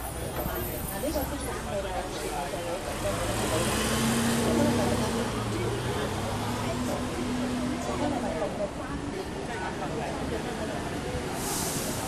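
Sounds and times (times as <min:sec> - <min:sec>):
bus diesel engine passing: 0:00.0 - 0:12.0
people's voices in background: 0:00.0 - 0:12.0.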